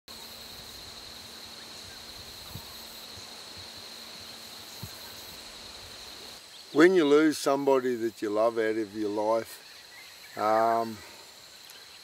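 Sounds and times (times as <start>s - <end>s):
insect chorus drone: 0.1s - 12.0s
soft background hiss: 0.1s - 12.0s.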